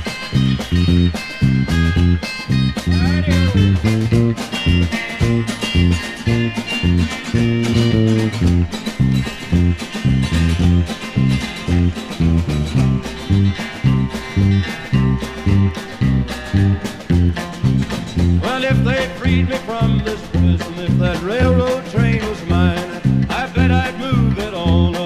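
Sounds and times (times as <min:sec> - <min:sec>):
country backing track: 0:00.0 - 0:25.0
electric bass guitar line: 0:00.0 - 0:25.0
guitar playing: 0:00.0 - 0:25.0.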